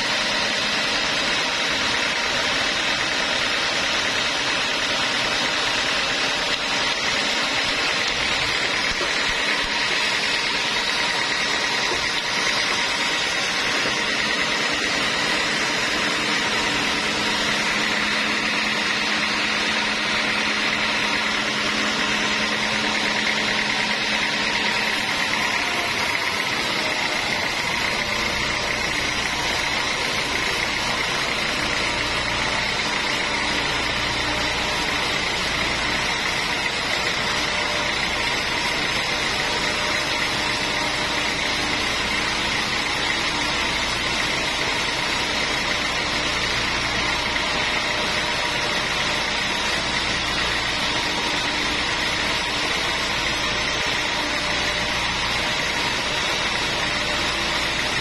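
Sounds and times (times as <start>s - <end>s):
band saw cutting log: 0.0s - 58.0s.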